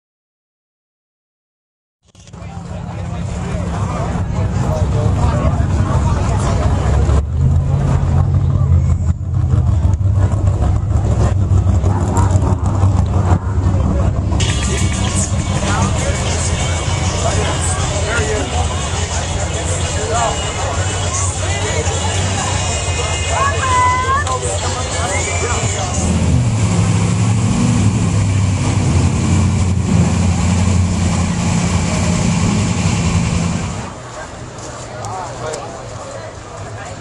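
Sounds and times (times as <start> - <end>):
crowd talking: 2.2 - 37.0
race engine idling: 2.2 - 37.0.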